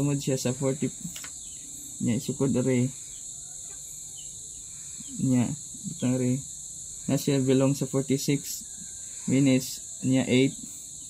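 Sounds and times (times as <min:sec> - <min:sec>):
high-pitched insect chirring: 0:00.0 - 0:11.0.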